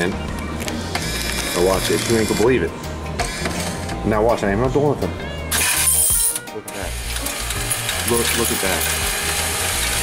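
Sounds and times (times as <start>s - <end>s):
background music: 0.0s - 10.0s
coins clattering into metal tray: 5.5s - 6.4s, 7.1s - 9.3s.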